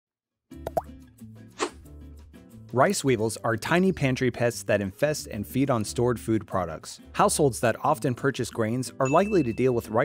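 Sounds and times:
short swish: 0:01.6 - 0:01.8.

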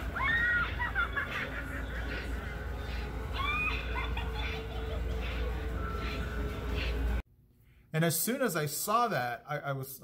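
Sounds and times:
low steady hum: 0:00.0 - 0:09.4
high-pitched laughing calls: 0:00.2 - 0:06.4.

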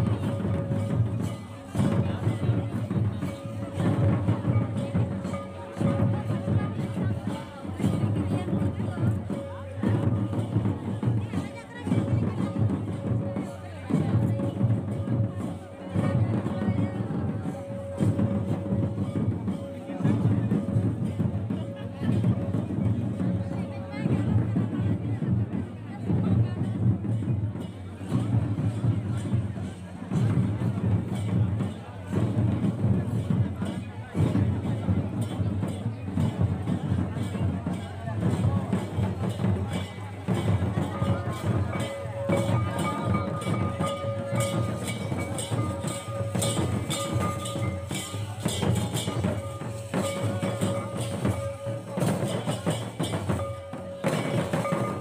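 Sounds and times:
folk dance music with drums: 0:00.0 - 0:55.0.

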